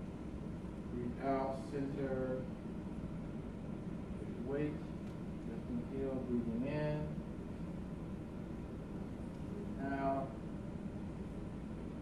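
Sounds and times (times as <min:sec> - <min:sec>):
low hall hum: 0:00.0 - 0:12.0.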